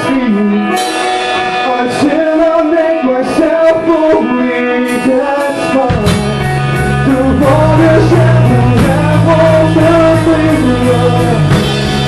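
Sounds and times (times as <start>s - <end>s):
drums: 0.0s - 12.0s
electric guitar: 0.0s - 12.0s
man singing: 0.0s - 12.0s.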